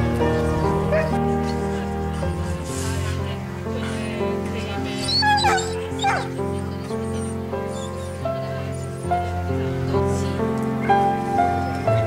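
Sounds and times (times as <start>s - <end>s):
background music with held notes: 0.0s - 12.0s
dog whimpering: 4.9s - 8.2s.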